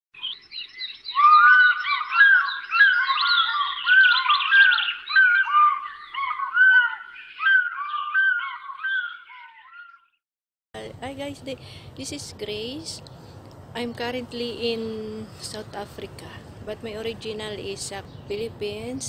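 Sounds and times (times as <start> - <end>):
birds chirping and whistling: 0.2 - 10.2.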